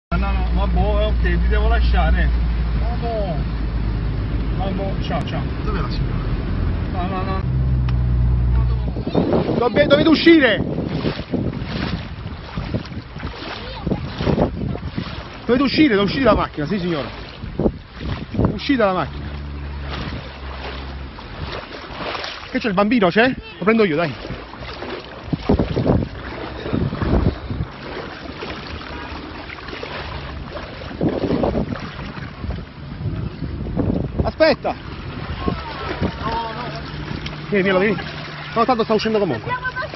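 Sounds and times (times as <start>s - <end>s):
floodwater flowing and splashing: 0.1s - 39.9s
wind buffeting microphone: 0.2s - 39.9s.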